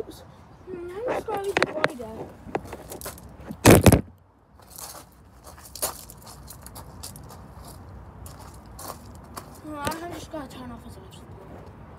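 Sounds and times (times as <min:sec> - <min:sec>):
rubbing scrape on microphone: 0:01.0 - 0:03.0.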